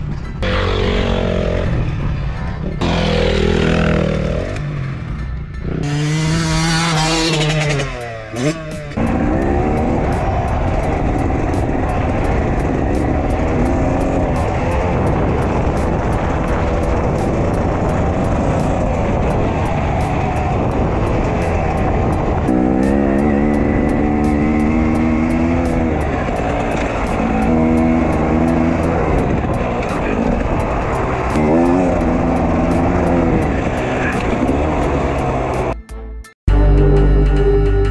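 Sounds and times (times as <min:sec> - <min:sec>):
two-stroke engine revving: 0:00.4 - 0:01.9, 0:05.7 - 0:35.8
wind noise on microphone: 0:09.0 - 0:35.8.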